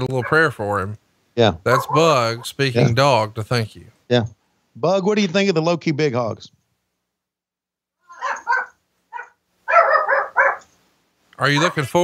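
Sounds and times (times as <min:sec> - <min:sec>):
dog barking: 0:00.0 - 0:00.6, 0:01.7 - 0:02.4, 0:08.1 - 0:10.7, 0:11.5 - 0:11.9.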